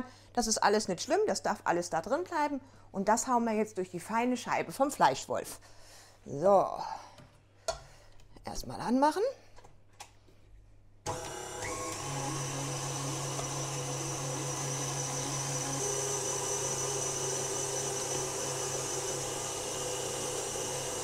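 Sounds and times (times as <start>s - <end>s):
electric meat grinder whining: 11.1s - 21.0s.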